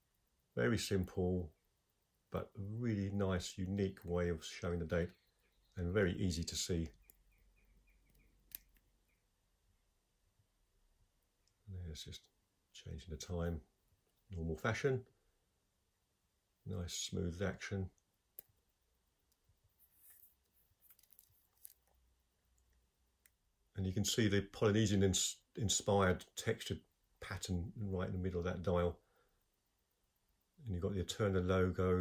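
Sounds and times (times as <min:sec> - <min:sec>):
faint rapid watch ticking: 0:00.0 - 0:09.5, 0:16.4 - 0:32.0.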